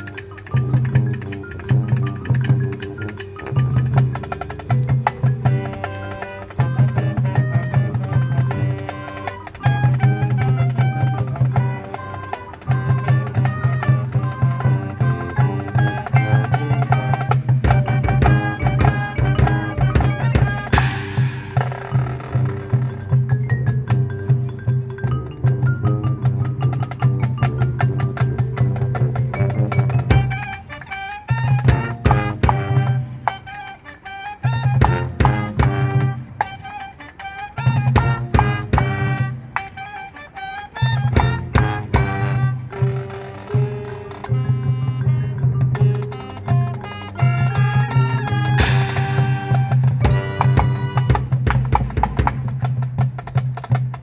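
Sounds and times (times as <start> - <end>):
marimba and xylophone playing: 0.0 - 54.0.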